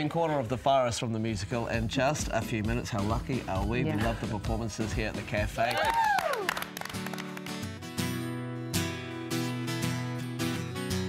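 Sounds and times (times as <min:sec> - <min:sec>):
people clapping: 0:05.5 - 0:07.9
person whooping: 0:05.7 - 0:06.6
guitar music: 0:06.6 - 0:11.0.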